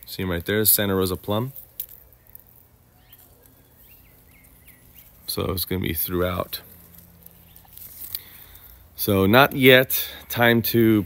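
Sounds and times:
quiet outdoor background: 0.0s - 11.0s
faint bird chirps: 2.0s - 5.3s.

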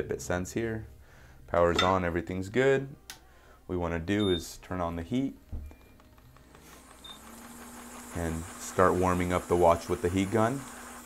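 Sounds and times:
heat gun fan hum: 6.0s - 11.0s.

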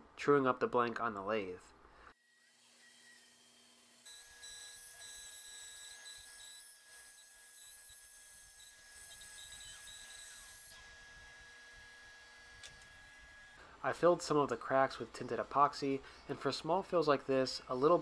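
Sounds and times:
bandsaw whining: 2.2s - 13.6s.

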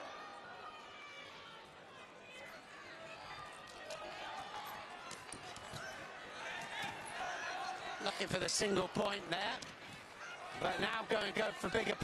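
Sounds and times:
arena crowd: 0.0s - 12.0s.

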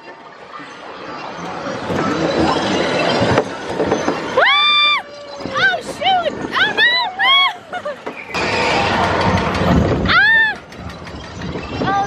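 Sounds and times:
roller coaster car rushing along track: 0.0s - 12.0s.

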